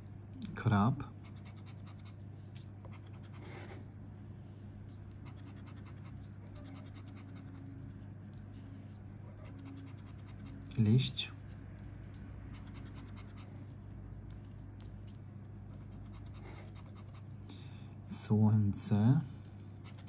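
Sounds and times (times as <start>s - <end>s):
steady low hum: 0.0s - 20.0s
scraper scratching lottery ticket: 1.2s - 2.2s, 2.8s - 3.8s, 5.0s - 17.3s, 19.8s - 20.0s.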